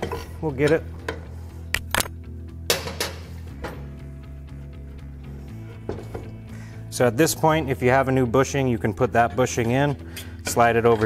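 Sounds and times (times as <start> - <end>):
background music with low bass: 0.0 - 11.0.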